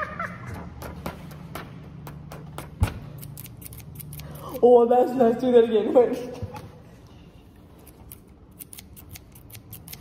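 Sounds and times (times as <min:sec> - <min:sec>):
scissors cutting card: 0:03.2 - 0:04.6, 0:07.8 - 0:10.0.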